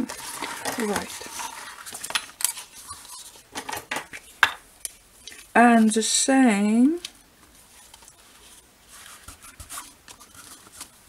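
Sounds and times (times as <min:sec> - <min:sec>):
paper and fabric rustling: 0:00.0 - 0:04.3, 0:07.4 - 0:11.0.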